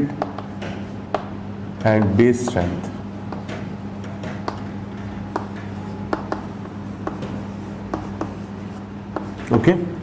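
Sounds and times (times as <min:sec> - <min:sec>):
chalk tapping and scratching: 0:00.0 - 0:01.3, 0:02.0 - 0:04.7, 0:05.3 - 0:09.8
steady low hum: 0:00.0 - 0:10.0.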